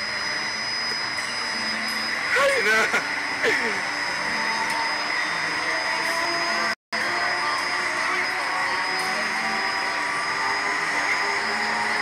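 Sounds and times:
ride machinery drone with whine: 0:00.0 - 0:12.0.

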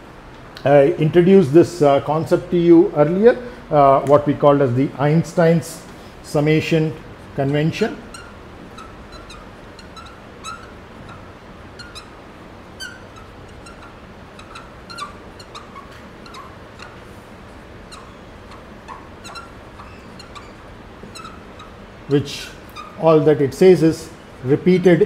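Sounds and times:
room noise: 0:00.0 - 0:25.0
writing squeaks on board: 0:08.0 - 0:12.2, 0:12.8 - 0:17.2, 0:17.8 - 0:21.8, 0:22.6 - 0:23.0.

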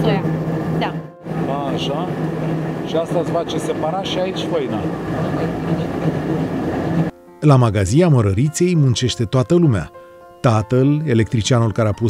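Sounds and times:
mill machinery humming: 0:00.0 - 0:07.1.

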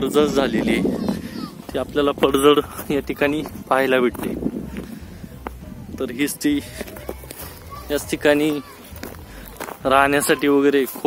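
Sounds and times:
steady low rumble: 0:00.0 - 0:06.2.

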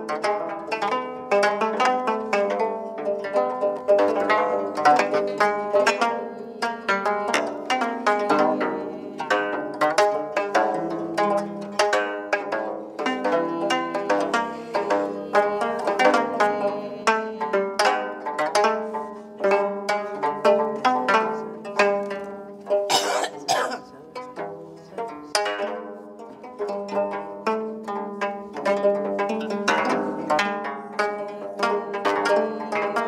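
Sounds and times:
zither plucked notes: 0:00.0 - 0:33.0.

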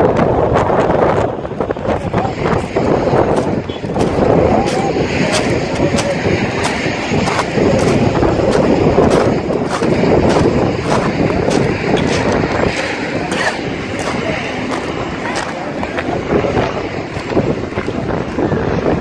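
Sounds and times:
wind buffeting microphone: 0:00.0 - 0:19.0
footsteps on gravel path: 0:02.4 - 0:16.2.

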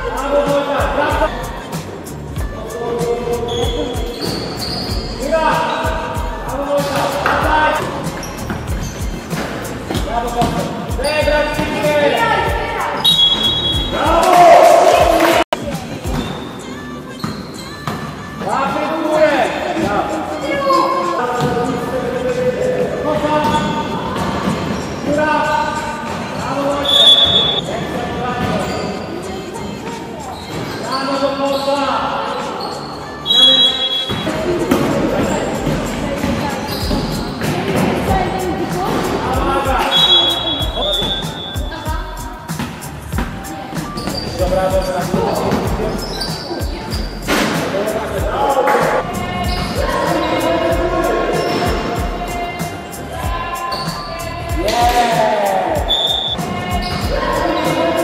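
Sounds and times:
shoe squeaks: 0:02.4 - 0:14.2, 0:15.8 - 0:22.4, 0:23.0 - 0:55.0, 0:55.8 - 0:58.0
players calling out: 0:32.7 - 0:58.0.

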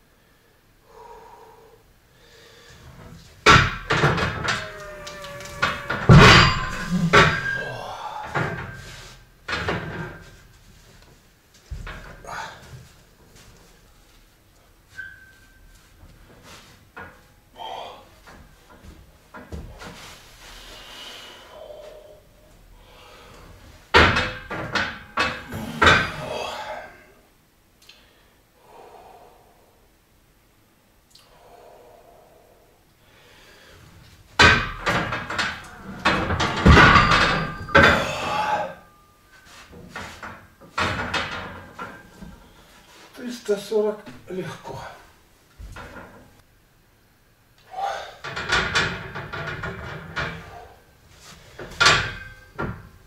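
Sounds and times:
man breathing and grunting: 0:00.2 - 0:09.3, 0:11.7 - 0:13.0, 0:17.5 - 0:23.8, 0:25.0 - 0:27.3, 0:27.9 - 0:30.0, 0:31.2 - 0:39.0, 0:47.6 - 0:48.3, 0:50.3 - 0:51.7
loaded bar thudding: 0:03.4 - 0:08.9, 0:23.9 - 0:26.4, 0:34.4 - 0:38.6.

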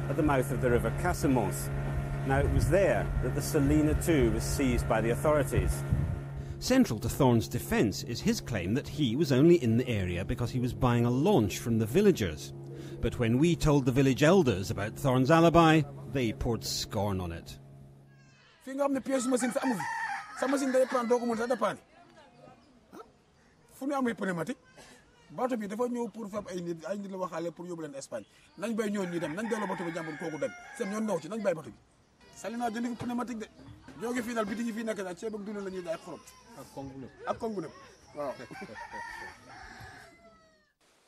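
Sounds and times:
voices: 0:00.0 - 0:05.9, 0:06.6 - 0:17.6, 0:18.6 - 0:39.7
rooster crowing: 0:18.3 - 0:21.8, 0:28.7 - 0:31.3, 0:38.3 - 0:40.8.

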